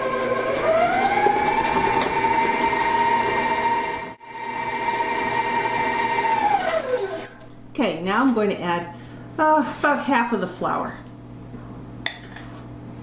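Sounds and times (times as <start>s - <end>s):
stand mixer motor whine: 0.0s - 7.3s.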